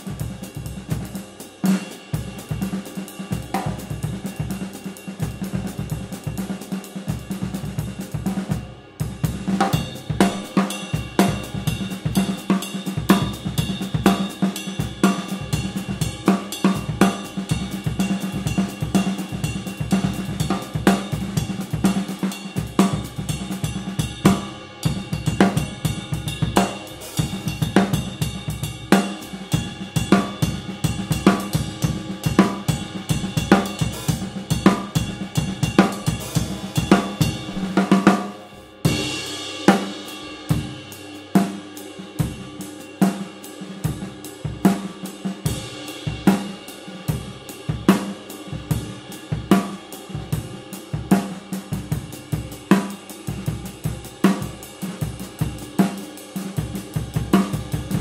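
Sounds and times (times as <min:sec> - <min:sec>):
ride cymbal: 0:00.0 - 0:51.0
drum kit groove: 0:00.0 - 0:58.0.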